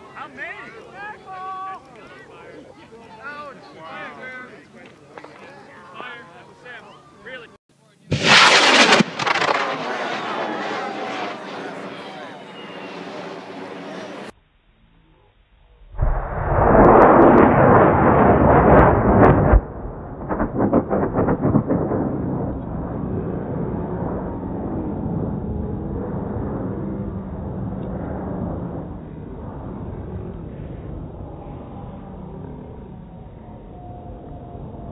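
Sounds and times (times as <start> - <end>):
rocket motor roaring: 8.1 - 14.3, 15.9 - 33.1
crackling rumble of rocket: 8.1 - 34.9.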